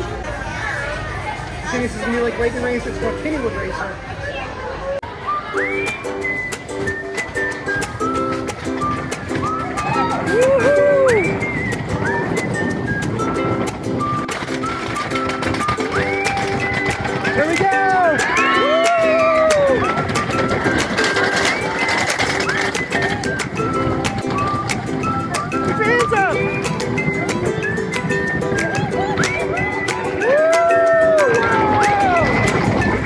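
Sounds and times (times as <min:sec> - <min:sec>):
repetitive music: 0:05.3 - 0:33.0
roller coaster clattering on track: 0:05.6 - 0:33.0
riders shrieking and whooping: 0:09.5 - 0:11.6, 0:14.3 - 0:23.5, 0:29.2 - 0:33.0.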